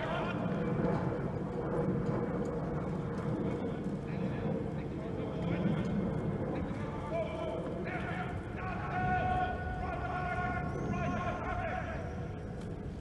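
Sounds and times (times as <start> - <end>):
distant indistinct voices: 0.0 - 13.0
low background rumble: 0.0 - 13.0.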